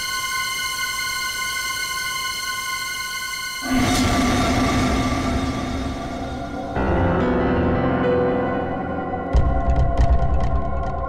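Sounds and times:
high sustained drone: 0:00.0 - 0:09.2
low rumbling swell: 0:03.6 - 0:08.2.

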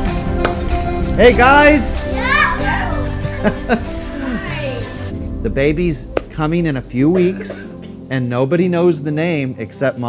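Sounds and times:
soft background music: 0:00.0 - 0:10.0
children laughing and calling: 0:01.5 - 0:05.1.

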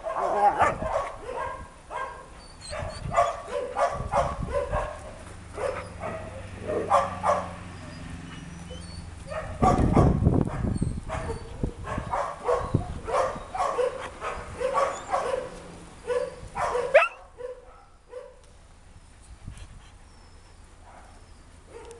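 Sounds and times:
dogs barking and yipping: 0:00.0 - 0:18.4, 0:20.4 - 0:21.9
dog yelping: 0:00.1 - 0:05.0, 0:05.6 - 0:18.3.

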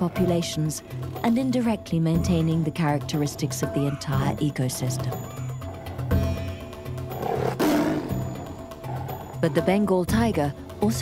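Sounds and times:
background music: 0:00.0 - 0:11.0
tiger roar: 0:05.6 - 0:09.8.

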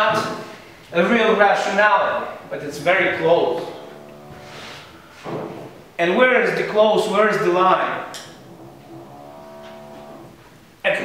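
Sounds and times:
man speaking: 0:00.9 - 0:03.9, 0:06.0 - 0:08.1
man holding hesitation vowel: 0:02.5 - 0:05.3.

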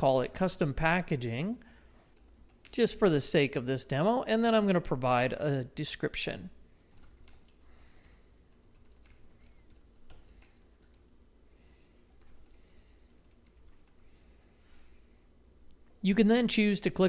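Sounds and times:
typing on computer keyboard: 0:06.8 - 0:11.2, 0:12.1 - 0:14.0.

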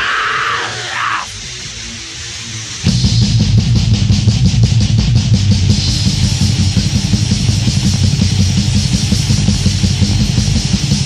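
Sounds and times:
fast drum and cymbal strikes: 0:00.0 - 0:11.0
heavy metal band playing: 0:00.0 - 0:11.0.

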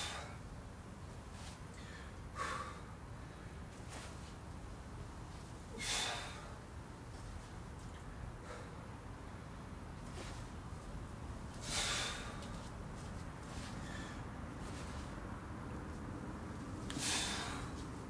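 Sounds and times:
low background hum: 0:00.0 - 0:18.0
man exhaling hard: 0:05.7 - 0:06.6, 0:11.6 - 0:12.4, 0:17.0 - 0:17.7.

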